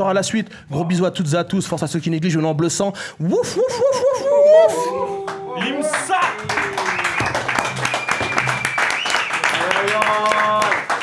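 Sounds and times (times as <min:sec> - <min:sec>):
people cheering: 0:03.7 - 0:11.0
group clapping: 0:04.7 - 0:11.0.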